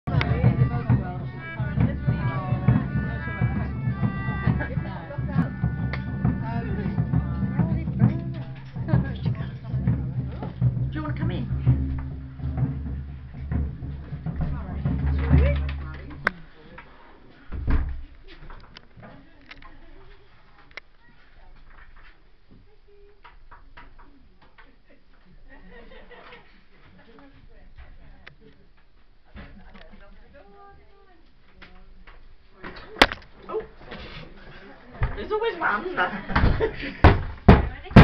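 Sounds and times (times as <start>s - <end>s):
crowd talking: 0.0s - 21.8s, 23.8s - 38.0s
instrumental music with drum beats: 0.1s - 16.5s.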